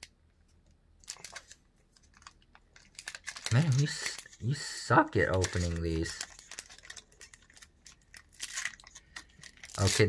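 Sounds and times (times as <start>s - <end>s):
foil wrapper crinkling and tearing: 1.0s - 10.0s.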